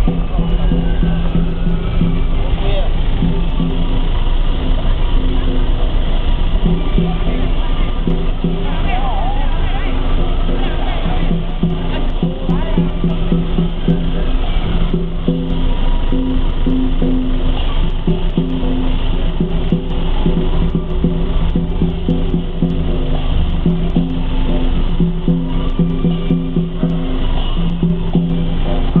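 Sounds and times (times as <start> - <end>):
gong and drum ensemble playing: 0.0 - 29.0.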